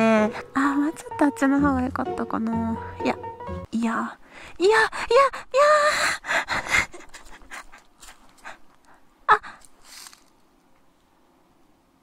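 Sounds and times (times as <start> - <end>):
woman panting: 4.2 - 9.8
woman laughing breathlessly: 4.9 - 9.7.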